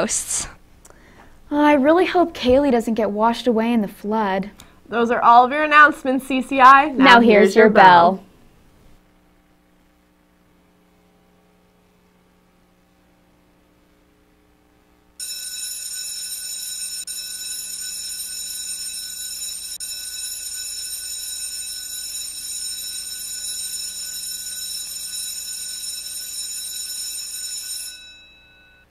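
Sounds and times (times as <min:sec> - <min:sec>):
school bell ringing: 0:15.2 - 0:28.9.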